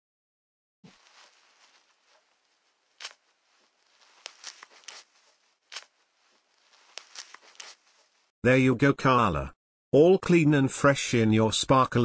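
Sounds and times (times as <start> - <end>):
crinkling and rustling: 0.9 - 8.3.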